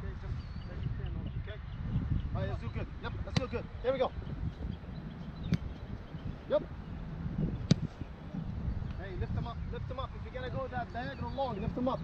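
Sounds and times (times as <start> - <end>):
low wind rumble on microphone: 0.0 - 12.0
soccer ball being kicked: 7.4 - 8.0.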